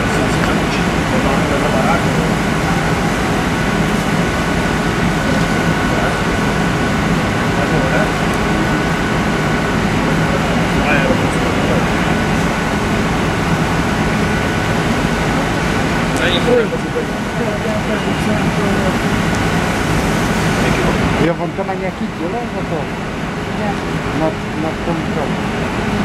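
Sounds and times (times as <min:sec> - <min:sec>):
vehicle engine idling: 0:00.0 - 0:26.0.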